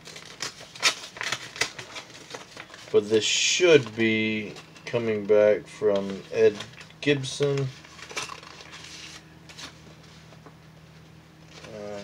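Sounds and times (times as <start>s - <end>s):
paper envelope clicks and crinkling: 0.0s - 4.6s, 5.9s - 10.5s
faint paper rustling: 0.0s - 5.1s, 5.9s - 12.0s.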